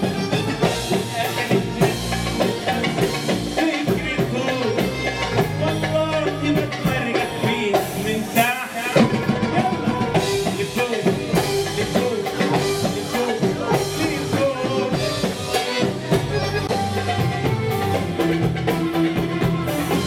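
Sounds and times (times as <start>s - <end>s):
lively dance music with keyboards: 0.0s - 20.0s.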